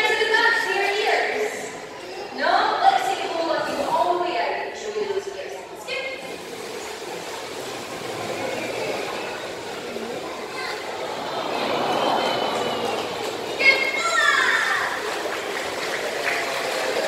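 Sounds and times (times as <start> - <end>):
audience murmuring in echoing hall: 0.0 - 17.0
water moving in pool: 6.0 - 17.0.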